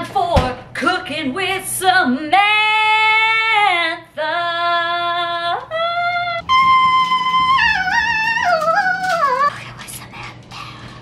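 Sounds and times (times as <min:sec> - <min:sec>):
high-pitched melody: 0:06.4 - 0:09.5.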